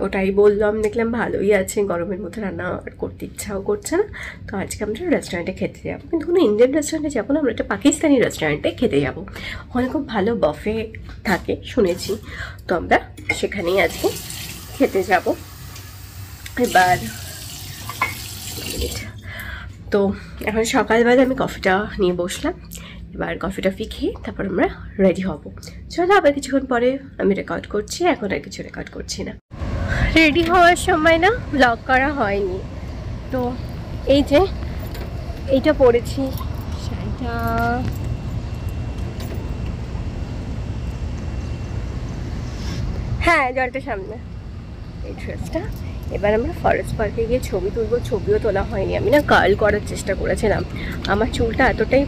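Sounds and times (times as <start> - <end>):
water running from tap into sink: 13.6 - 19.1.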